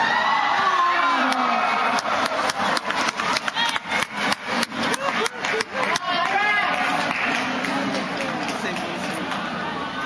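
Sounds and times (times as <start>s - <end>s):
crowd voices: 0.0s - 10.0s
spectators clapping rapidly: 1.1s - 9.6s.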